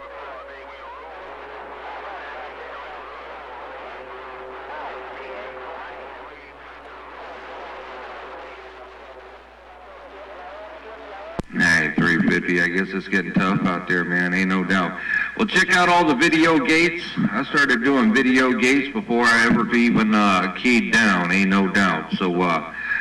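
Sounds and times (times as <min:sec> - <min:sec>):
garbled radio voice: 0:00.0 - 0:22.8
radio static: 0:00.0 - 0:23.0.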